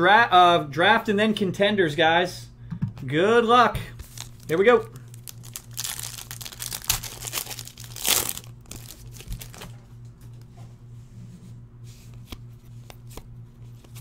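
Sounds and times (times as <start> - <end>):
cards rustling and clicking: 4.0 - 9.7, 12.1 - 14.0
foil wrapper tearing and crinkling: 4.0 - 9.7.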